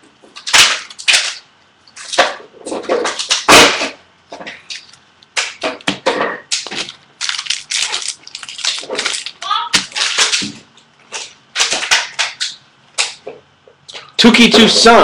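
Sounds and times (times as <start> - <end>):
trading cards snapping and rustling: 0.3 - 2.4, 4.5 - 13.2.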